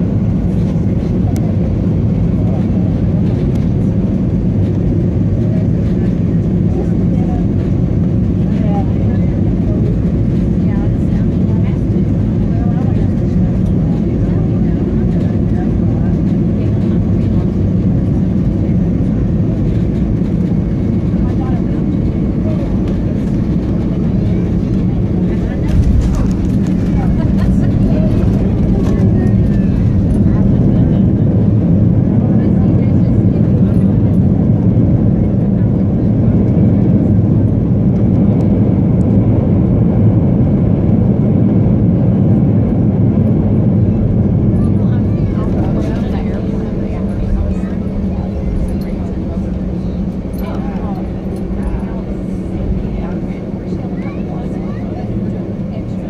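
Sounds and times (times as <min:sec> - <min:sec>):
airliner engine and air rumble: 0:00.0 - 0:56.0.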